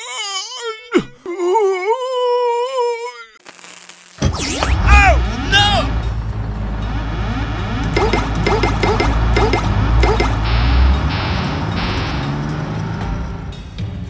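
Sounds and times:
rocket launch rumble: 4.1s - 6.4s
springy rising and falling tones: 4.2s - 13.4s
background music: 4.3s - 14.0s.

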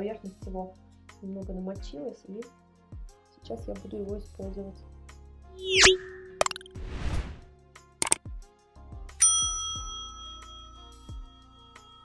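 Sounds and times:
short low falling swoops: 5.6s - 7.5s
loud bell-like ding: 9.2s - 12.0s.

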